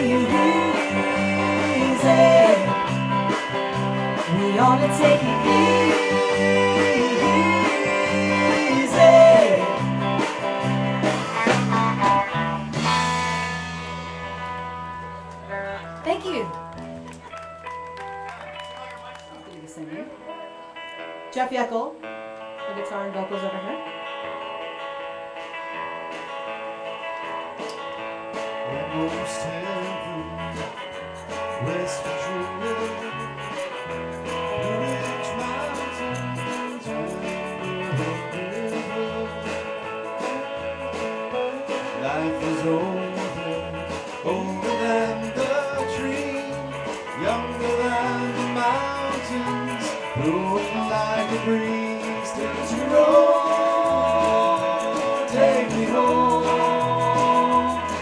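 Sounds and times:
man singing: 0.0 - 3.1, 4.1 - 10.1, 28.6 - 33.2, 34.5 - 40.6, 41.5 - 58.0
live band playing: 0.0 - 58.0
strummed acoustic guitar: 25.4 - 58.0.

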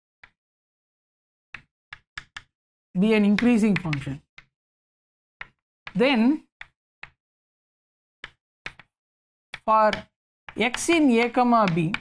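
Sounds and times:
chalk tapping on chalkboard: 1.6 - 2.5, 3.2 - 4.5, 5.4 - 5.6, 6.6 - 7.2, 8.2 - 12.0.

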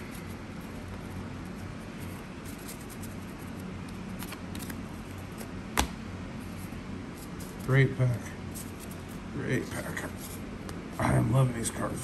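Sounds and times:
cards rustling on tabletop: 0.0 - 7.8.

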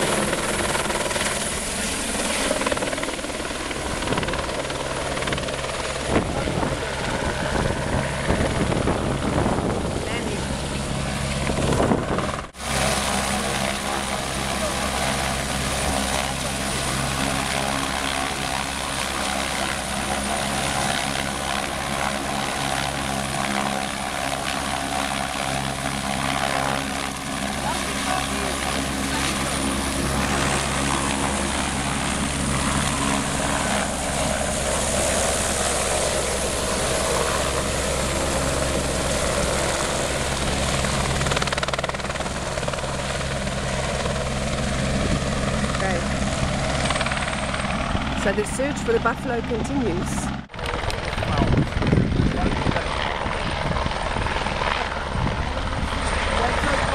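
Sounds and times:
helicopter running: 0.0 - 56.9.

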